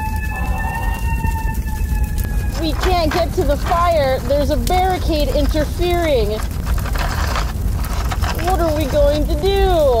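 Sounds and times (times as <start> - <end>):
steady low rumble: 0.0 - 10.0
person talking: 2.6 - 6.5, 8.4 - 10.0.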